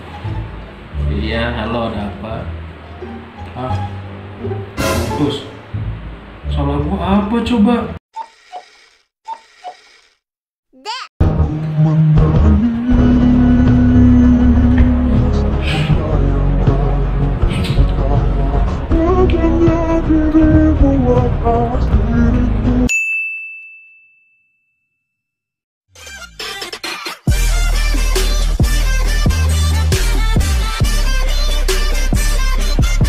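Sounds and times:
background music: 0.0 - 7.8, 11.2 - 22.9
bright bell-like ding: 22.9 - 24.7.

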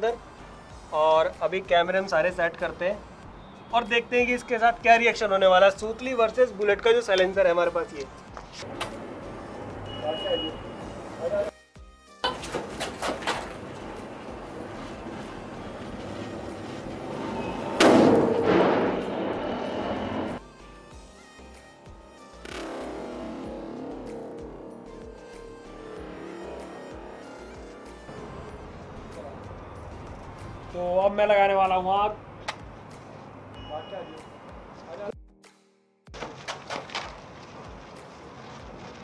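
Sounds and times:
muffled firecracker blast: 17.8 - 19.6
quick footsteps: 36.1 - 39.0.

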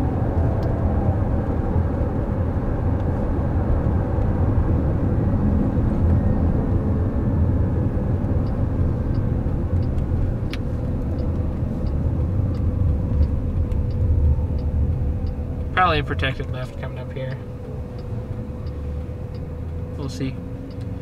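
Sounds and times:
road and tyre noise: 0.0 - 21.0
turn signal ticking: 0.2 - 21.0.

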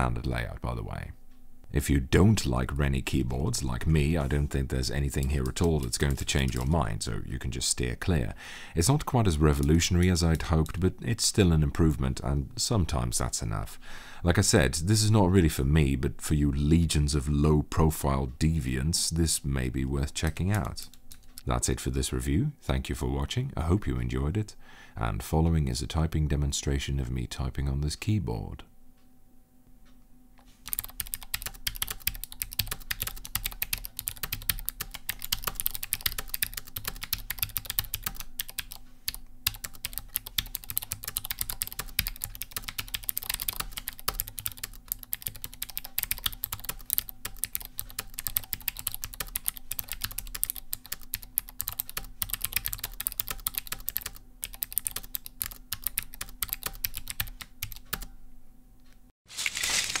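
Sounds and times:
keyboard typing: 5.2 - 6.8, 30.6 - 58.1.

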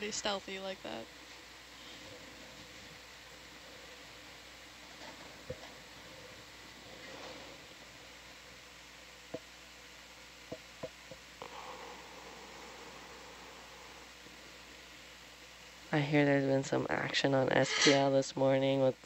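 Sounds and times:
faint steady hiss: 0.0 - 19.0
low hum: 0.0 - 19.0.

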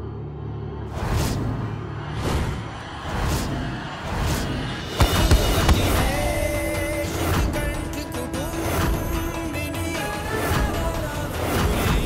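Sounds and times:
rushing sweeps: 0.9 - 9.4.

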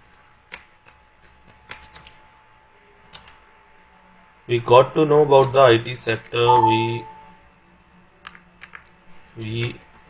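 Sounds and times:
keystrokes on computer keyboard: 0.0 - 2.2, 3.1 - 3.4.

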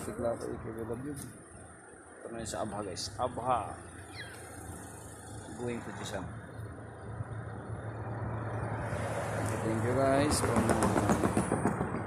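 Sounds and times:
car engine humming: 0.0 - 12.0
road noise rushing: 0.0 - 12.0.

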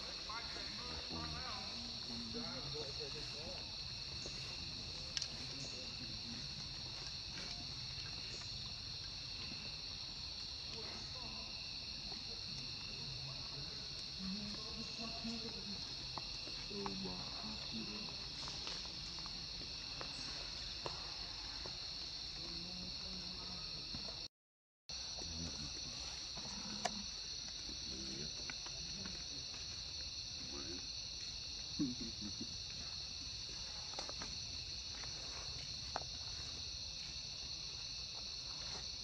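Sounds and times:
insects droning: 0.0 - 24.3, 24.9 - 39.0.

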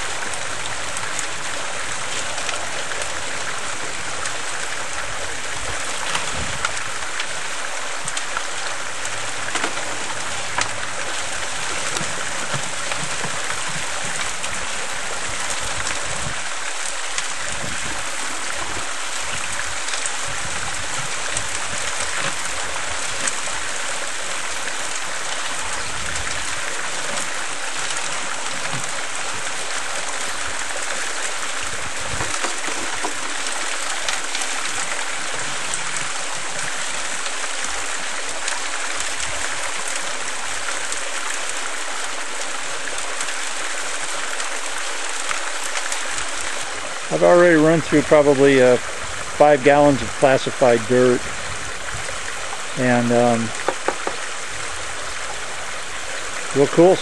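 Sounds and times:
water spraying in turning drum: 0.0 - 57.0.

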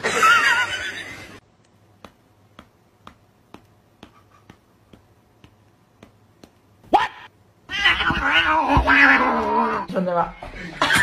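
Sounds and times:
cat yowling: 7.0 - 9.9.

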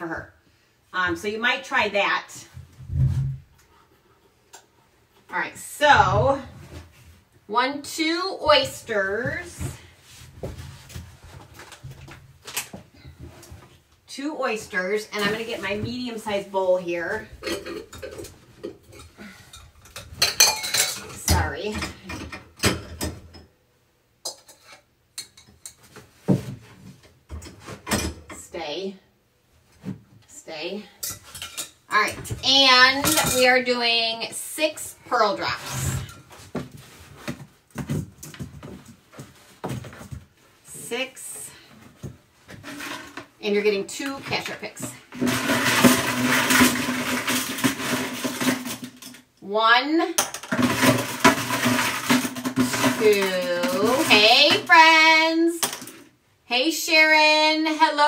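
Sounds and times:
bowls knocking and clattering: 17.2 - 23.5, 31.0 - 33.7, 44.2 - 49.2, 50.2 - 55.0.

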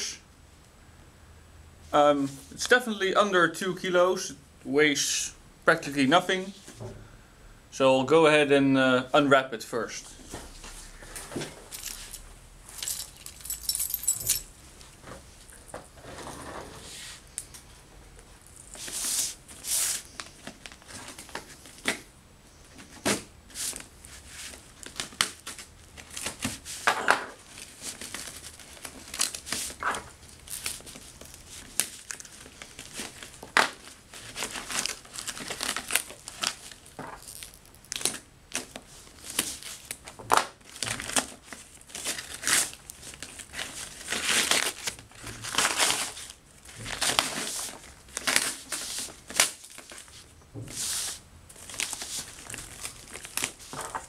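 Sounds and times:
paper wrapping crumpling and tearing: 23.5 - 54.0.

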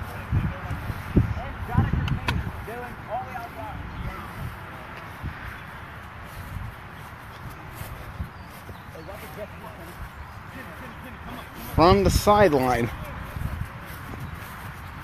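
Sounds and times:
faint distant voices calling: 0.0 - 15.0
outdoor background noise: 0.0 - 15.0.

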